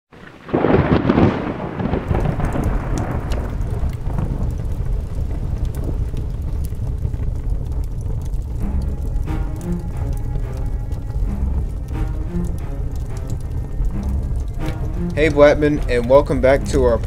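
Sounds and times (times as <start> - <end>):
low rumble of rain: 0.1 - 17.0
thunderclap rumbling: 0.2 - 17.0.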